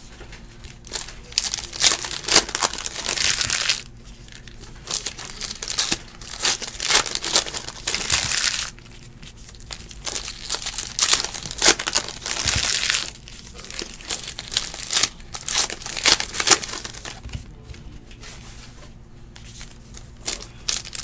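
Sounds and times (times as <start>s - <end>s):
foil wrappers crinkling: 0.0s - 17.4s, 19.4s - 21.0s.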